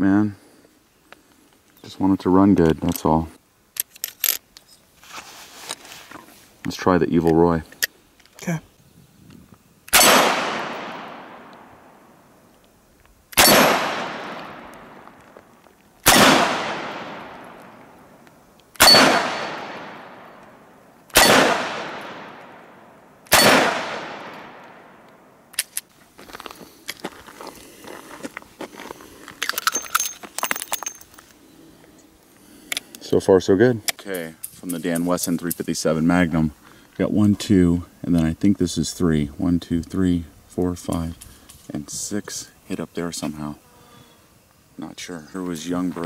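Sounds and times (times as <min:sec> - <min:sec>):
revolver shots echoing: 0:09.9 - 0:11.7, 0:13.4 - 0:15.0, 0:16.0 - 0:18.0, 0:18.8 - 0:25.1.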